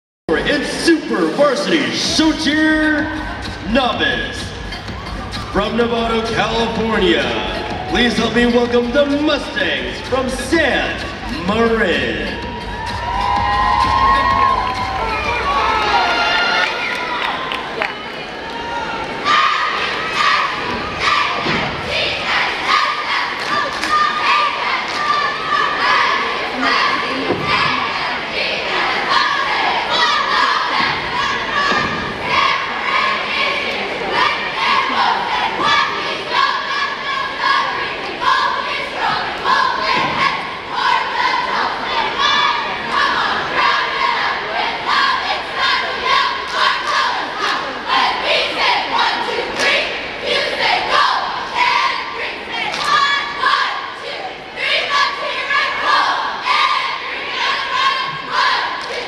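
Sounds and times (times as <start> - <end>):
crowd noise: 0.3 - 59.0
cheerleaders shouting in unison: 6.4 - 59.0.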